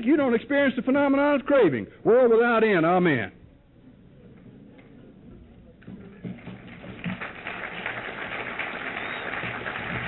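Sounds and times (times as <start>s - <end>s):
faint tape hiss: 0.0s - 10.0s.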